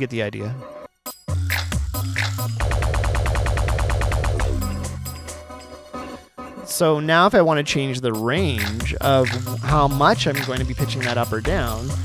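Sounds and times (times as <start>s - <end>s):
fast synth pulse: 2.6s - 5.0s
steady bass: 8.6s - 12.0s.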